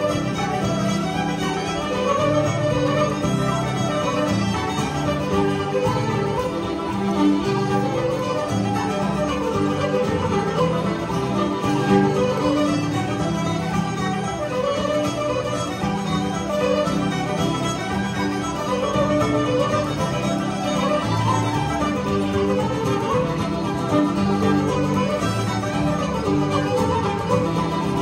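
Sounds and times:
traditional folk music ensemble: 0.0s - 28.0s.

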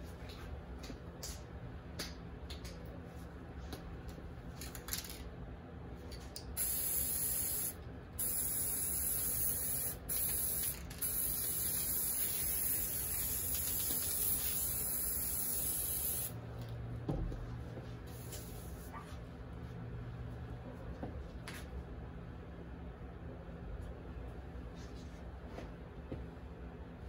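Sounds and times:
aerosol spray can hissing: 6.6s - 16.3s.

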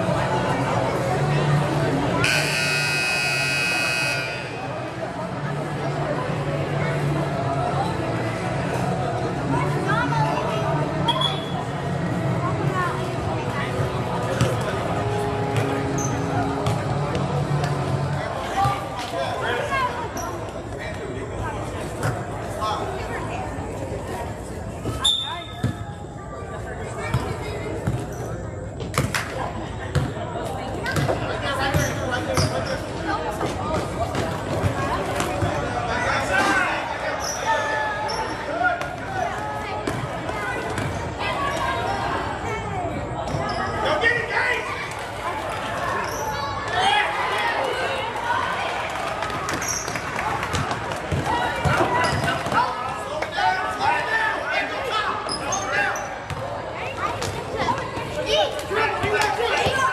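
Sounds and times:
crowd chatter: 0.0s - 59.9s
scoreboard buzzer: 2.2s - 4.6s
shoes squeaking on court: 15.6s - 17.3s, 30.9s - 33.0s, 51.6s - 52.6s.

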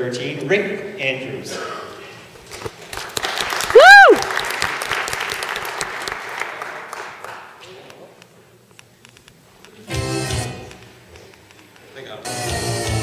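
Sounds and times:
audience applauding: 2.5s - 7.6s
loud voiced whoop: 3.7s - 4.3s.

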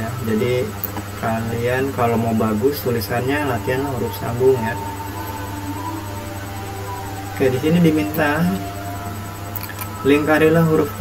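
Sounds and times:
faint held tones: 0.0s - 11.0s
steady low hum: 0.0s - 11.0s.

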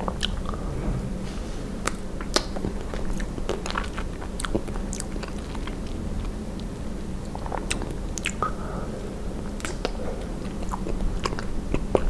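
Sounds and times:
chewing ice cream bar: 0.0s - 0.6s, 1.8s - 12.0s
crackles of ice cream bar: 1.8s - 8.8s
wet mouth sounds: 1.8s - 12.0s.

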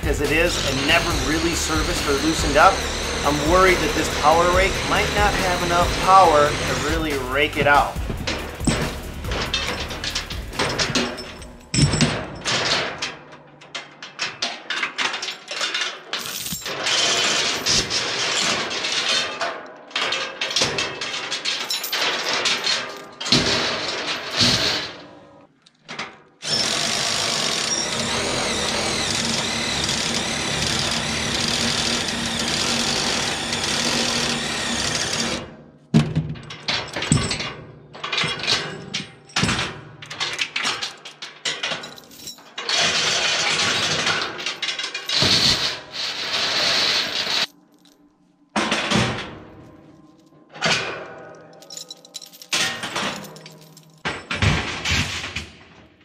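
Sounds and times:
cordless drill running: 0.0s - 11.7s, 26.4s - 35.4s
steel chains clanking: 0.0s - 25.2s, 26.4s - 35.5s, 36.4s - 55.4s.

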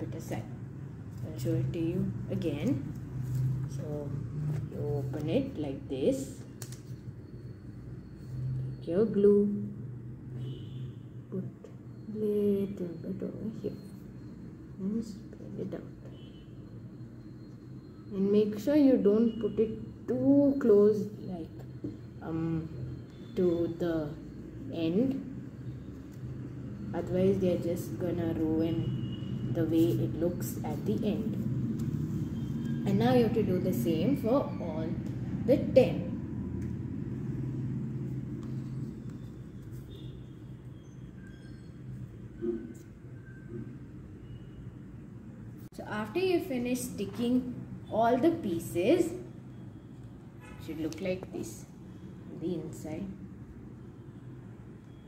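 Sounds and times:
faint high tone: 11.3s - 14.2s, 40.8s - 44.6s.

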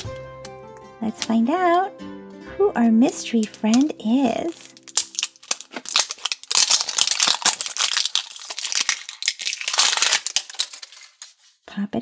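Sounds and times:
plastic wrap crinkling and tearing: 3.1s - 11.6s.

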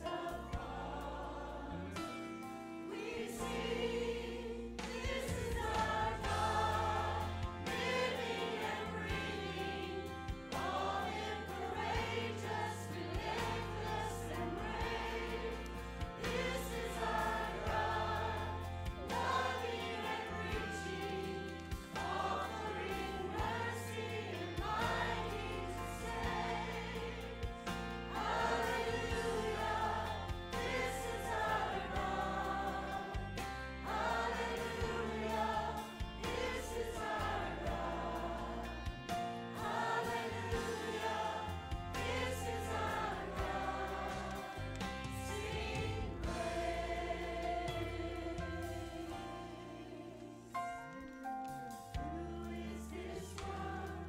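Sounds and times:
church choir singing: 0.0s - 54.0s
sustained bass accompaniment: 3.3s - 49.8s.

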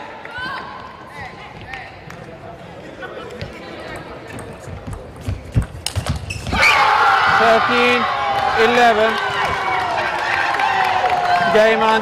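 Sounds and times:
loud shout: 6.6s - 12.0s.

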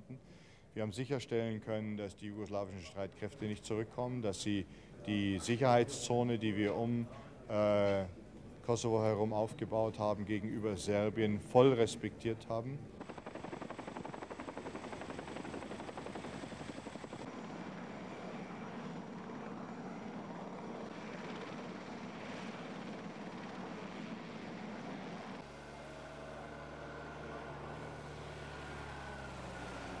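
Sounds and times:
engine hum with held tones: 12.8s - 30.0s
engine pulsing: 12.8s - 30.0s.

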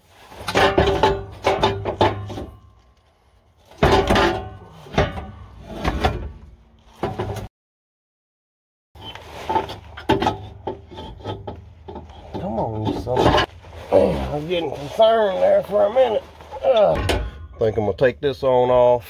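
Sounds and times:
metal exhaust pipe scraping and knocking: 0.0s - 7.5s, 9.0s - 18.4s.

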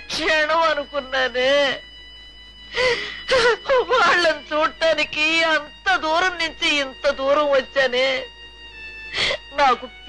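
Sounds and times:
elderly woman gasping: 2.7s - 3.7s, 9.0s - 9.6s
elderly woman crying: 2.7s - 4.9s, 9.1s - 10.0s.

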